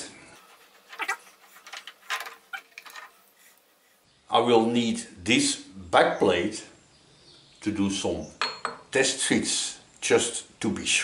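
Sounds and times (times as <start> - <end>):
steel parts knocking and clinking: 1.6 - 3.2.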